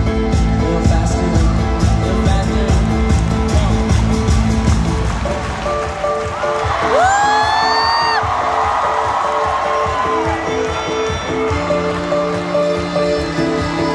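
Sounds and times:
person whooping: 0:06.8 - 0:08.3.

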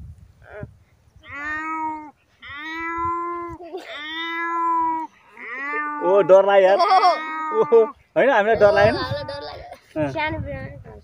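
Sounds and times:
boy imitating cat meows: 0:00.4 - 0:07.9, 0:08.6 - 0:09.7.

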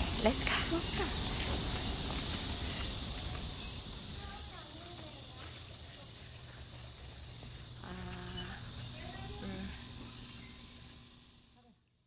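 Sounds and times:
high-pitched insect drone: 0:00.0 - 0:12.0.

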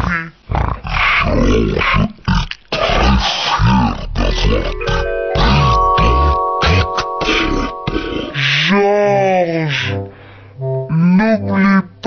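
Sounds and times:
deep drawn-out pig grunt: 0:00.0 - 0:04.6.

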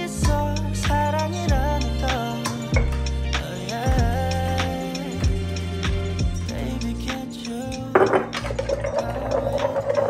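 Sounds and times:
spoon stirring in metal pitcher: 0:07.9 - 0:10.0.

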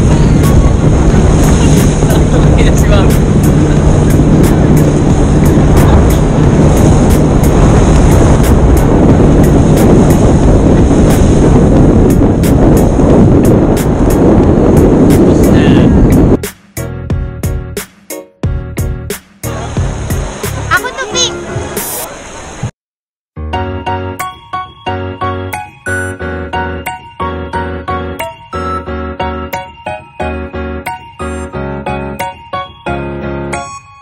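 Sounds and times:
wind and water rushing: 0:00.0 - 0:16.4, 0:19.4 - 0:22.7.

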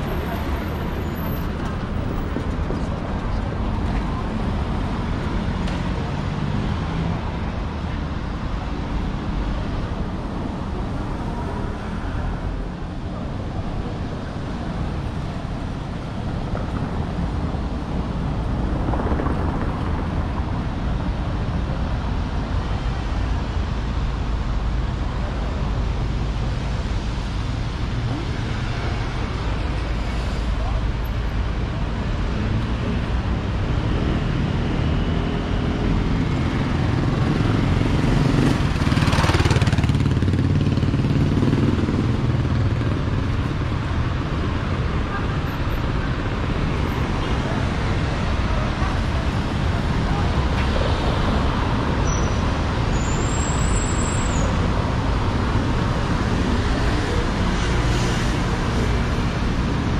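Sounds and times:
traffic rumble: 0:00.0 - 0:59.9.

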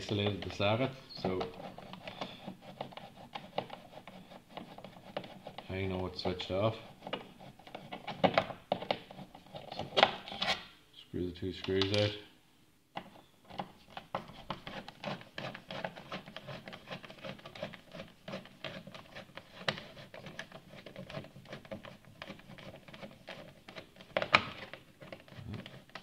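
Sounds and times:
screwdriver clicking and scraping: 0:00.0 - 0:10.7, 0:13.0 - 0:26.0.

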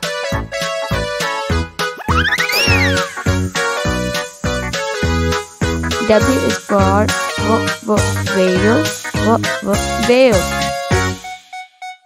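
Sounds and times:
bouncy children's music: 0:00.0 - 0:12.0
cartoon whistle sound effect: 0:02.0 - 0:03.3.

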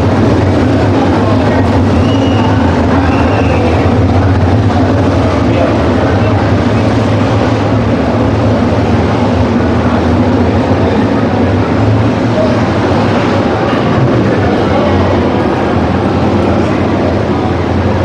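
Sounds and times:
racing car engines droning: 0:00.0 - 0:18.0.

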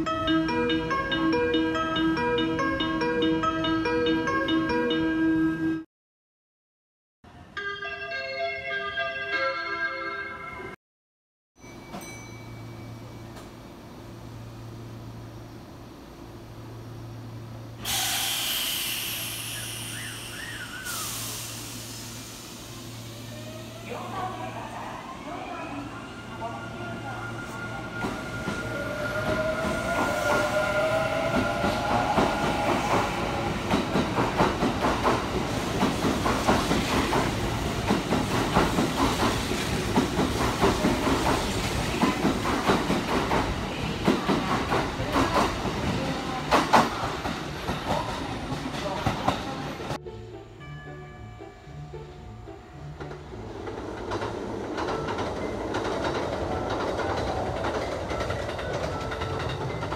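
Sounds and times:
distant train passing: 0:12.8 - 0:50.0, 0:52.0 - 0:59.9.

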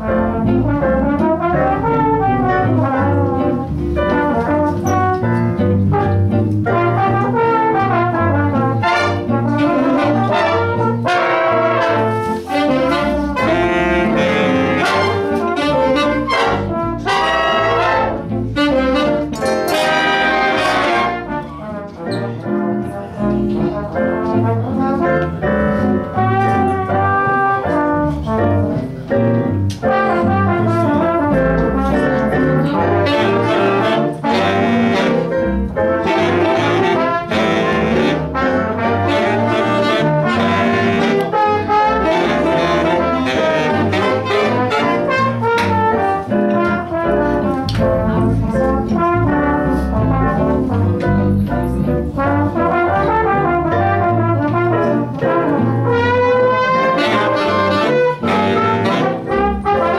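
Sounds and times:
big band jazz: 0:00.0 - 0:59.9.

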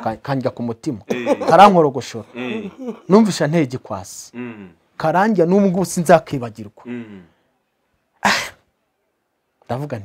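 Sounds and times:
person speaking: 0:00.0 - 0:07.3.

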